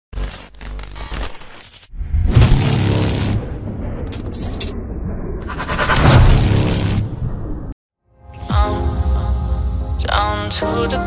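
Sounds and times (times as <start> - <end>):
glitch clicks: 0.1 - 4.8.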